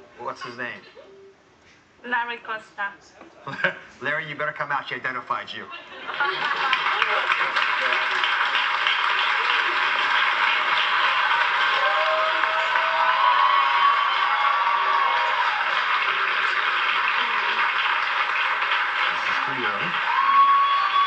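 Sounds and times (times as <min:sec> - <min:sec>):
audience applauding and cheering: 0:06.0 - 0:21.0.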